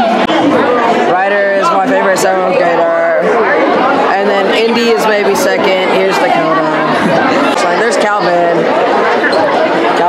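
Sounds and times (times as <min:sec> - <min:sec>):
chatter of young voices: 0:00.0 - 0:10.0.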